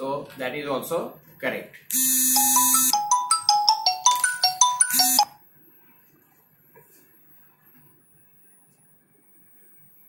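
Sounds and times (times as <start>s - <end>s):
electronic ringtone jingle: 2.1s - 5.3s.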